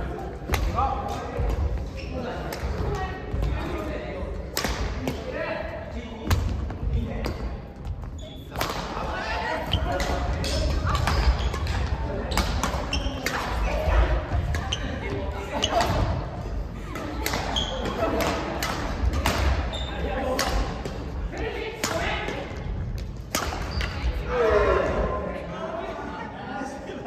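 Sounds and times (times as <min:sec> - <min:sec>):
rackets striking shuttlecock: 0:17.0 - 0:19.7, 0:23.0 - 0:24.0.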